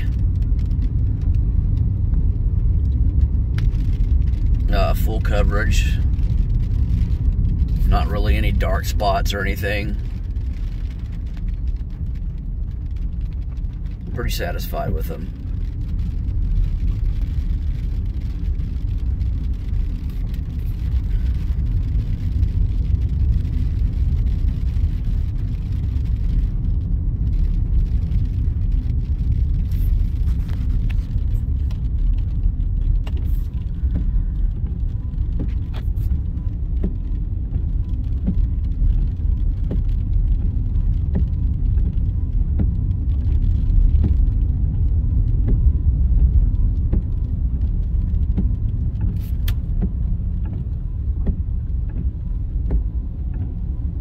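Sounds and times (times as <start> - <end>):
engine and tyres on wet road: 0.0 - 54.0.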